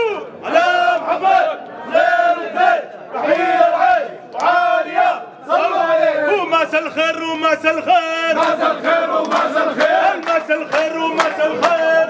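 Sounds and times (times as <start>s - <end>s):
men chanting loudly: 0.0s - 12.0s.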